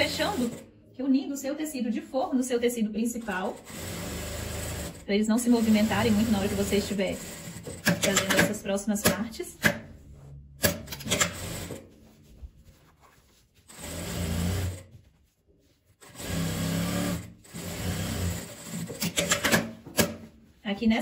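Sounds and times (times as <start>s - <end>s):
sewing machine running: 0.0s - 0.6s, 3.2s - 8.6s, 10.9s - 11.8s, 13.7s - 14.9s, 16.0s - 19.7s
fabric rustling: 11.8s - 13.8s.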